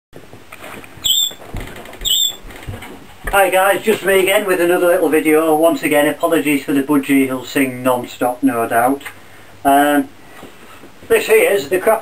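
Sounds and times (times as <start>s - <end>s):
budgerigar chirping: 1.0s - 1.4s, 2.0s - 2.4s.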